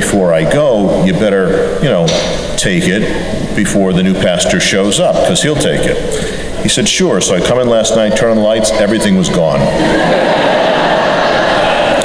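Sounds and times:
congregation laughing: 2.9 - 12.0.

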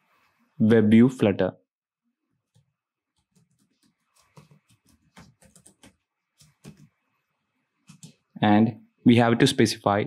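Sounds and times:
typing on computer keyboard: 2.5 - 7.0, 7.9 - 8.2.

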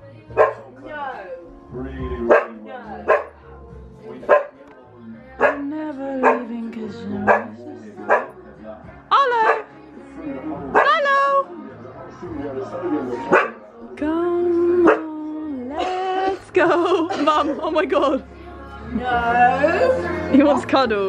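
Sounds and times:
dog barking: 0.4 - 0.7, 2.3 - 3.4, 4.3 - 4.6, 5.4 - 6.5, 7.2 - 8.4, 9.4 - 9.7, 10.7 - 11.0, 13.3 - 13.6, 14.8 - 15.1.

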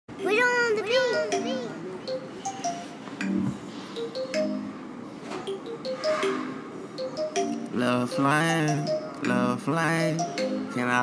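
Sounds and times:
high child-like voice calling: 0.2 - 1.9.

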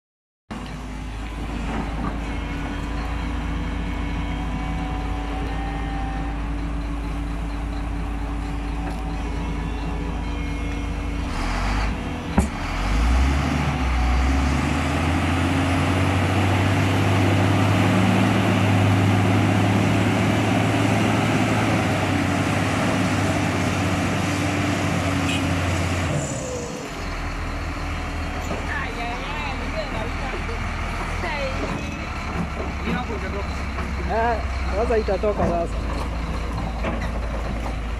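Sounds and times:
heavy diesel engines running: 0.5 - 37.9.

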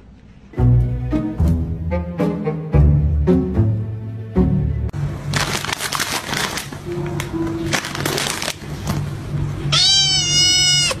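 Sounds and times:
background music: 0.4 - 5.2, 6.8 - 8.4
plastic packet crinkling: 5.2 - 9.1
cat meowing: 9.6 - 11.0.

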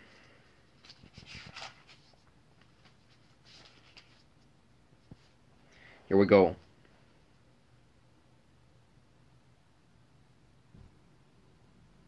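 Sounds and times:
paper pages turning: 0.7 - 4.4.

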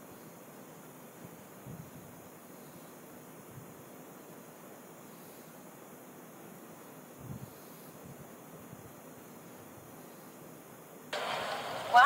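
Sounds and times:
faint steady hiss: 0.0 - 12.0
street traffic: 11.2 - 12.0.

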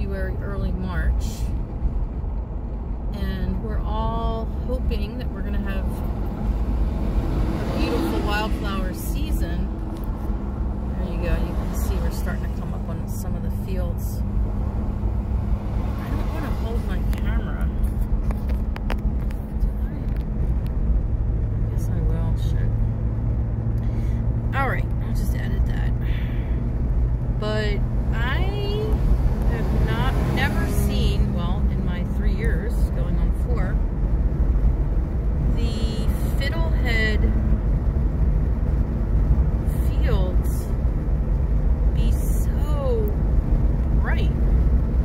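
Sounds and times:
car driving rumble: 0.0 - 45.0.

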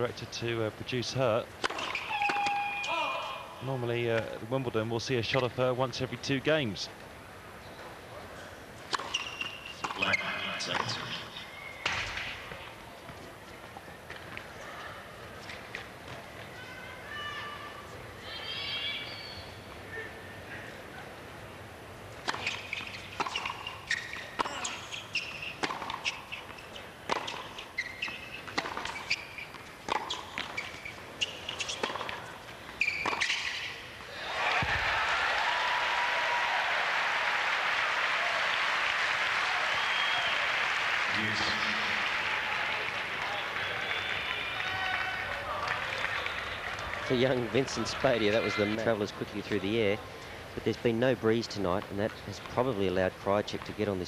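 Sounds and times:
tennis ball struck by racket: 1.6 - 2.6, 22.2 - 27.5, 28.4 - 32.3, 33.0 - 33.6
ball bouncing on hard court: 23.2 - 32.2, 32.8 - 33.7, 34.6 - 34.8
crowd applause: 34.1 - 48.8.

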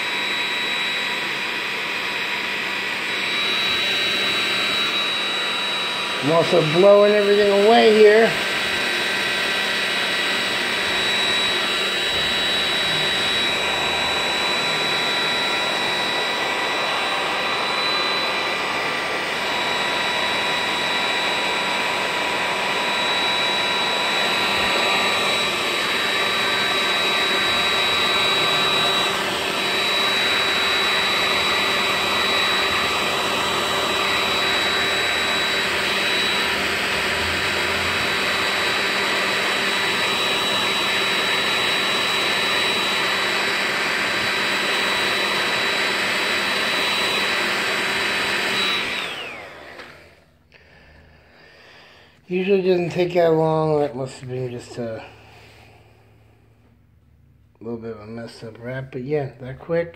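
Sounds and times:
hair dryer running: 0.0 - 58.6.

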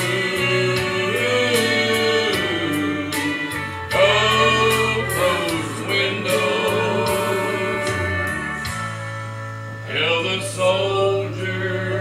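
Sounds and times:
gospel quartet singing in harmony: 0.0 - 12.0
instrumental accompaniment with bass: 0.0 - 12.0.

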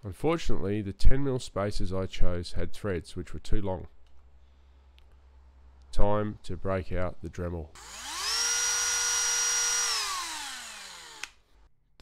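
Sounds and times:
rotary tool whine: 7.8 - 11.4.

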